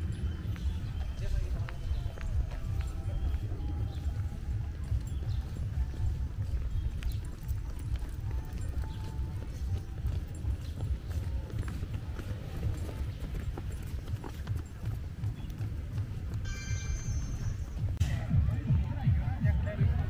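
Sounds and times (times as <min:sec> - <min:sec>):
footsteps on rubberised path: 0:00.0 - 0:18.1.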